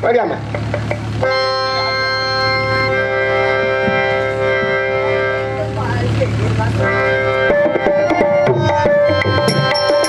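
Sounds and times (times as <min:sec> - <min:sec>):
keyboard organ chord: 0:01.0 - 0:10.0.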